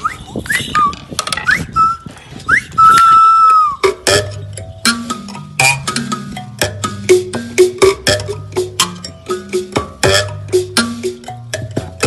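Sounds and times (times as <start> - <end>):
bird-like whistle calls: 0.0 - 4.0
sticks tapping wooden percussion: 3.0 - 12.0.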